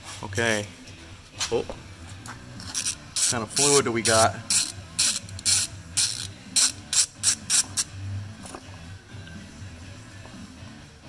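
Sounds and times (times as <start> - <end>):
socket ratchet clicking: 2.8 - 7.9.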